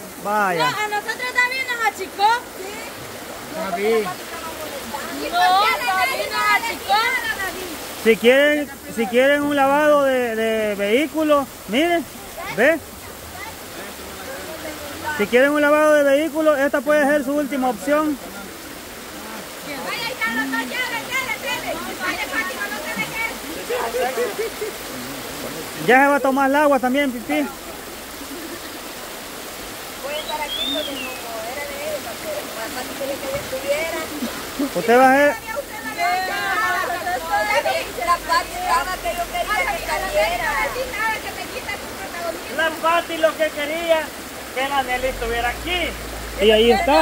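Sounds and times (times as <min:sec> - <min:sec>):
shallow river water rushing: 0:00.0 - 0:47.0
voices talking: 0:00.0 - 0:47.0.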